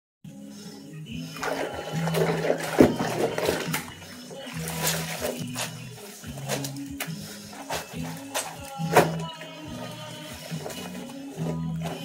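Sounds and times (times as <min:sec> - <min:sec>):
background music: 0:00.3 - 0:12.0
soapy water sloshing in basin: 0:01.2 - 0:12.0.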